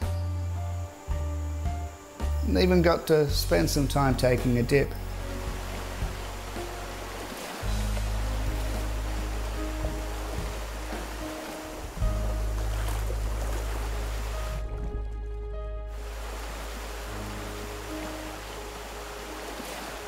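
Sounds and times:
background music with bass notes: 0:00.0 - 0:19.4
river rapids rushing: 0:05.1 - 0:14.6, 0:16.0 - 0:20.0.

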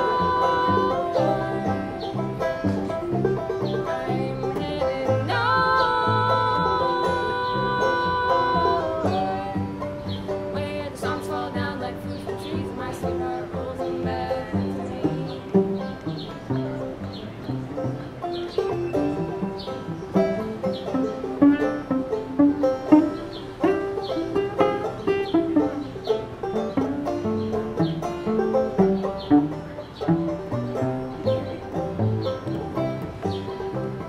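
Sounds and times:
banjo picking: 0:00.0 - 0:34.0
low cello notes: 0:00.0 - 0:34.0.

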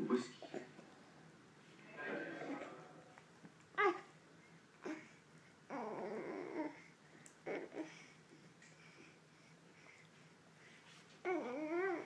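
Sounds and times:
dog whining: 0:05.7 - 0:06.8, 0:11.3 - 0:12.0.

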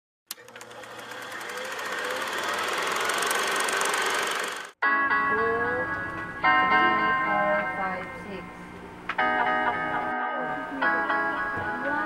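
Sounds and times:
film projector clattering: 0:00.3 - 0:04.8.

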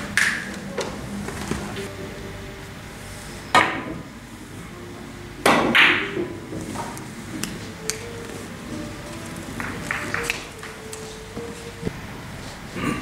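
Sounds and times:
billiard balls clacking: 0:03.5 - 0:04.1, 0:05.4 - 0:12.1.

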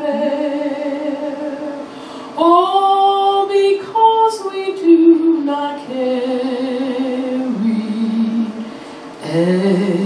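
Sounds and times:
woman singing a hymn: 0:00.0 - 0:10.0
breath: 0:01.9 - 0:02.4, 0:08.7 - 0:09.2.

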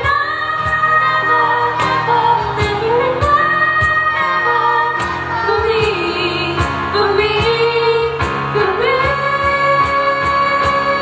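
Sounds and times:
women singing a slow ballad: 0:00.0 - 0:11.0.

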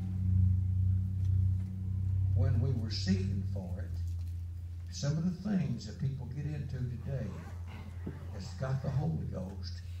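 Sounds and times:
low steady bass hum: 0:00.0 - 0:10.0.

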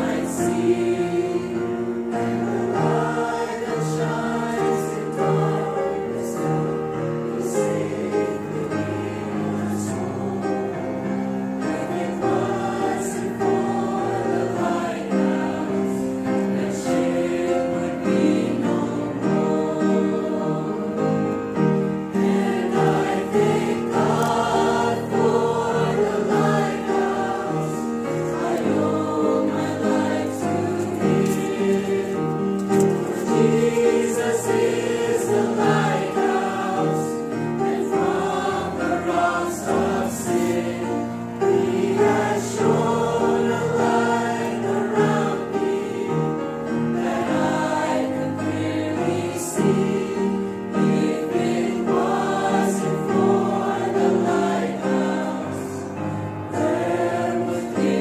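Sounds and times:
choir singing a hymn: 0:00.0 - 0:58.0
upright piano: 0:00.0 - 0:58.0.

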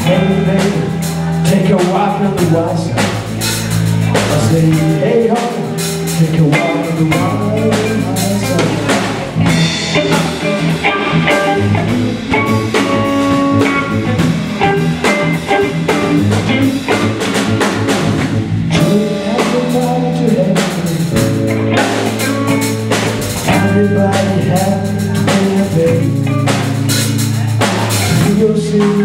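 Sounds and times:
drum kit hits: 0:00.0 - 0:29.0
electric bass: 0:00.0 - 0:29.0
electric guitar: 0:00.0 - 0:29.0.

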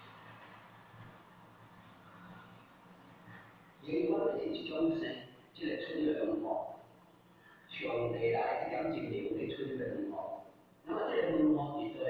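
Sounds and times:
man lecturing: 0:03.8 - 0:06.9, 0:07.6 - 0:12.0.

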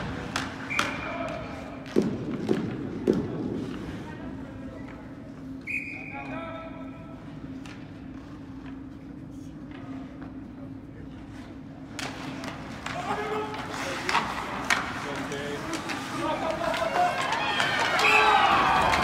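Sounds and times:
hockey sticks or puck knocking: 0:00.0 - 0:03.9, 0:11.9 - 0:19.0
distant shouting voices: 0:17.0 - 0:19.0.

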